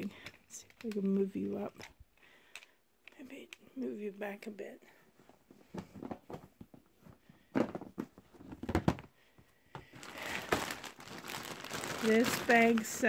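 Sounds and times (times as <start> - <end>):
plastic zipper bag crinkling: 9.9 - 13.0.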